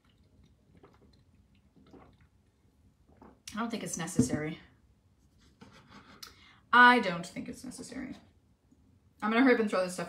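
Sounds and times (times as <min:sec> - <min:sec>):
sipping and swallowing: 0:00.0 - 0:03.6.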